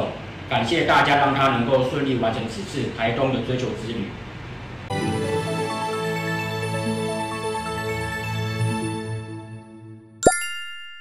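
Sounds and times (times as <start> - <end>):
background music: 4.9 - 10.4
bright ringing chime: 10.2 - 11.0.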